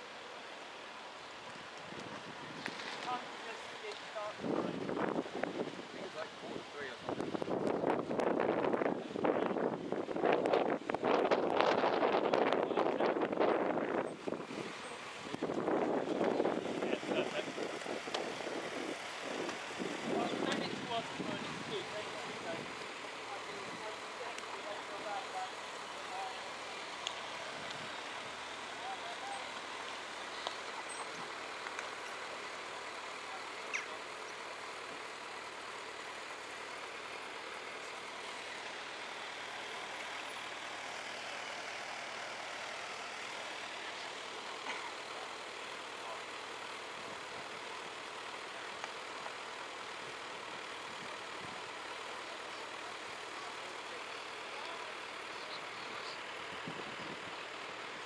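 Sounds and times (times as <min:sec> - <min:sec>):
road traffic hum: 0:00.0 - 0:58.0
faint voices: 0:11.1 - 0:58.0.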